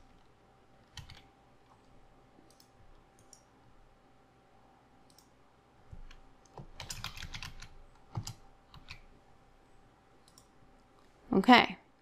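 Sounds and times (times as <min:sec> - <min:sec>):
computer keyboard typing: 0:00.8 - 0:01.3, 0:02.5 - 0:03.5, 0:05.9 - 0:09.1.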